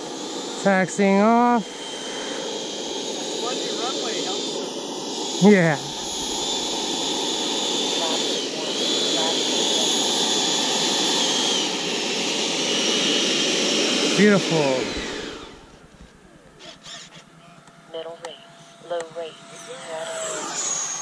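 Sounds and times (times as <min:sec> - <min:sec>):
electric ducted fans whining: 0:00.0 - 0:21.0.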